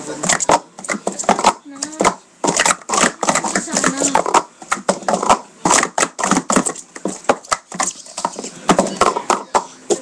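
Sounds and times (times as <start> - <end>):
plastic cups clacking: 0.1 - 10.0.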